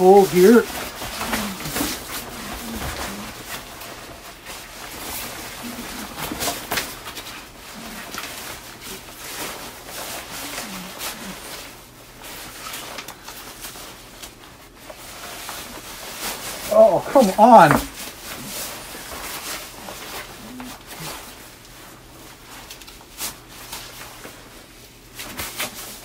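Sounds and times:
fabric poncho rustling: 0:14.6 - 0:24.4
muffled grunts: 0:16.7 - 0:17.9.

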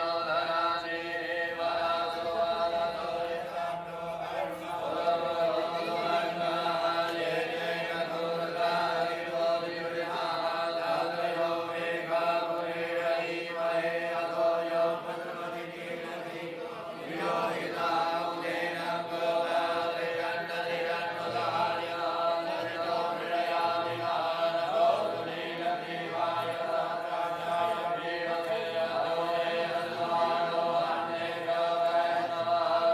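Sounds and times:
person chanting into a microphone: 0:00.0 - 0:32.9
priests chanting mantras: 0:00.0 - 0:32.9.

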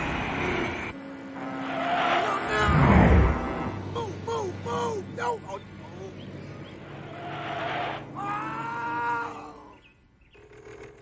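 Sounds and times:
truck air horn blast: 0:03.0 - 0:04.0.

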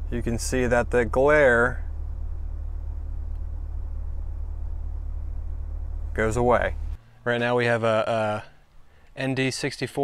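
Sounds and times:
car engine idling: 0:00.0 - 0:09.2.

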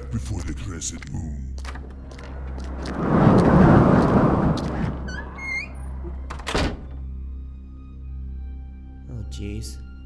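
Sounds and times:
heavy door scraping: 0:02.9 - 0:06.9
door shutting thud: 0:05.0 - 0:07.0
door squeaks: 0:05.0 - 0:07.0.

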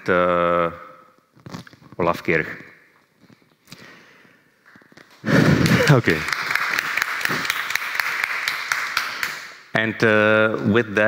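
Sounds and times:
audience applauding: 0:05.3 - 0:09.5.

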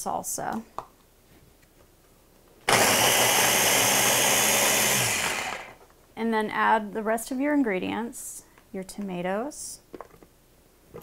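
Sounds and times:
food processor chopping: 0:02.7 - 0:05.8.

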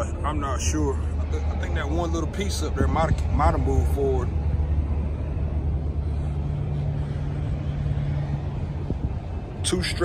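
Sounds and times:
diesel truck engine idling: 0:00.0 - 0:10.0.

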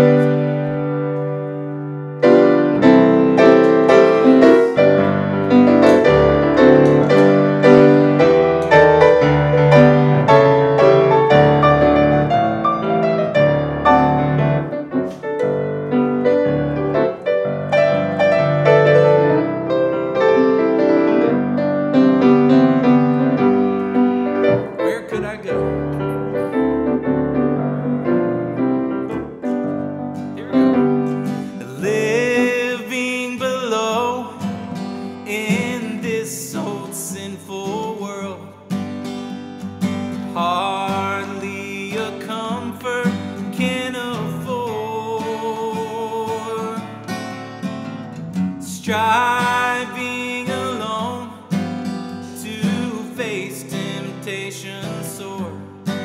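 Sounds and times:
grand piano playing: 0:00.0 - 0:48.3
acoustic guitar: 0:00.0 - 0:56.0.

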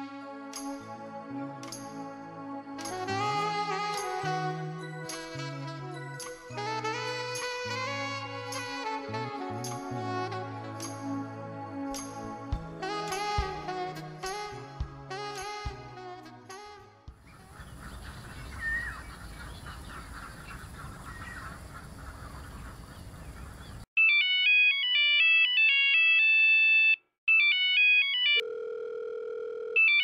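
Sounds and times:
music: 0:00.0 - 0:17.2
phone ringtone beeps: 0:24.0 - 0:30.0.

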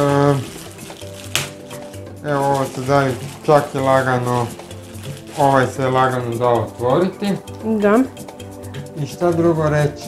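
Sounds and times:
plastic packaging crinkle: 0:00.0 - 0:07.0
man's voice: 0:02.2 - 0:04.5, 0:05.3 - 0:07.5.

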